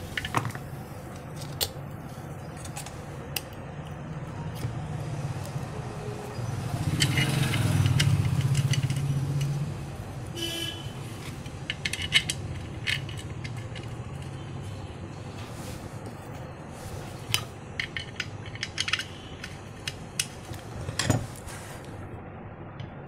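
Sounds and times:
steady low hum: 0.0 - 23.0
metal clicks of screws and tools: 7.0 - 9.5, 11.4 - 14.3, 17.3 - 20.3.

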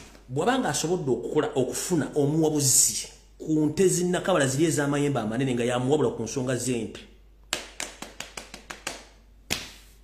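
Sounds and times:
sharp hand taps: 7.5 - 9.8.

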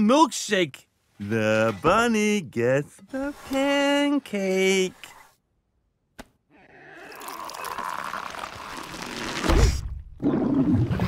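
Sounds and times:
cartoon slurping gulp: 7.0 - 9.8.

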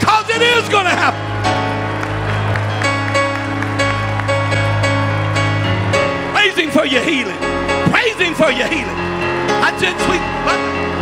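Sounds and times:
sustained keyboard chords: 0.0 - 11.0.

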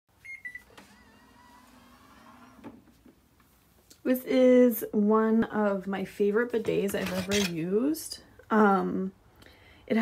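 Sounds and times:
motor whir of lid lifting: 0.6 - 2.9.

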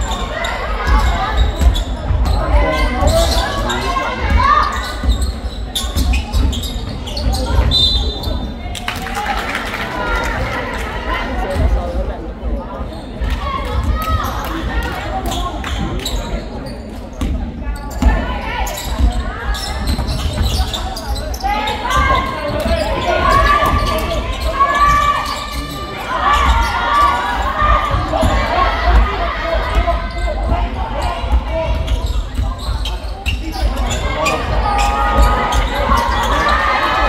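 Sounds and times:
voices calling out: 17.9 - 37.0.

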